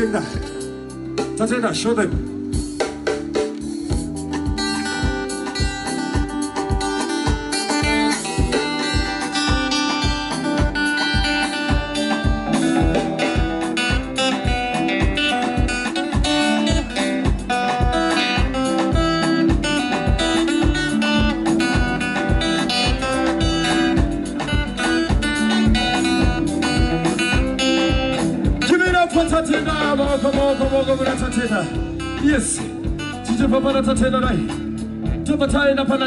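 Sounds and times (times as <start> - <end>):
drums keeping a steady beat: 0.0 - 36.0
acoustic guitar picking a melody: 4.4 - 28.6.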